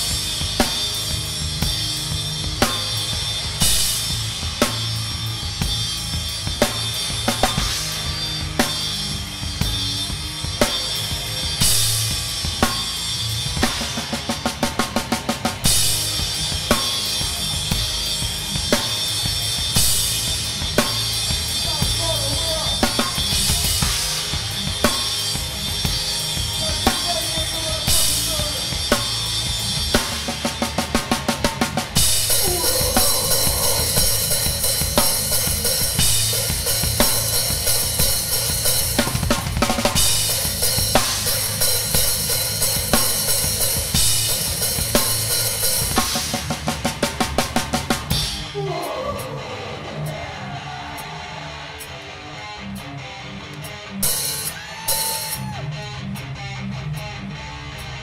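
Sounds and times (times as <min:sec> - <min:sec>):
drum kit playing: 0:00.0 - 0:58.0
hardcore band music: 0:00.0 - 0:58.0.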